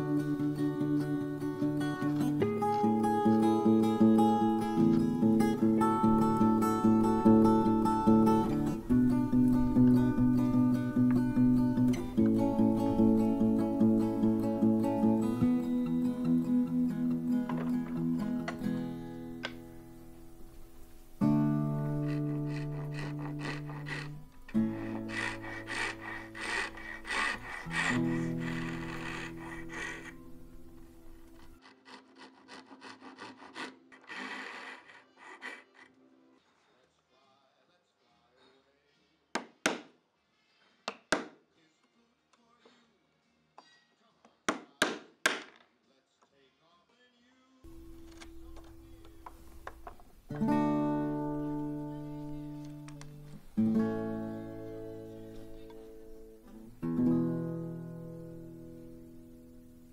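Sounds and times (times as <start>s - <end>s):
acoustic guitar chords: 0.0s - 23.0s, 50.2s - 59.9s
hand saw cutting wood: 21.7s - 30.6s, 31.2s - 36.0s.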